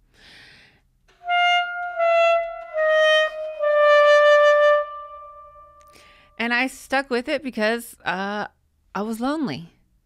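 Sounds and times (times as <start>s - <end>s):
saxophone long note: 1.1s - 6.2s.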